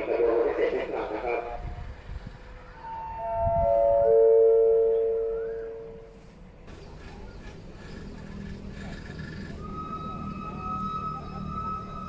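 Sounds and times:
descending four-note chime: 0:02.7 - 0:06.1, 0:09.6 - 0:12.0.

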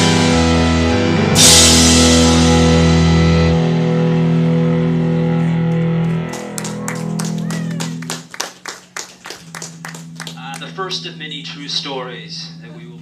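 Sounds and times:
faint guitar tone: 0:00.0 - 0:08.2, 0:09.3 - 0:13.0
rock band chord ringing out: 0:00.0 - 0:13.0
audience clapping: 0:05.4 - 0:11.0
audience cheering: 0:06.0 - 0:10.8.

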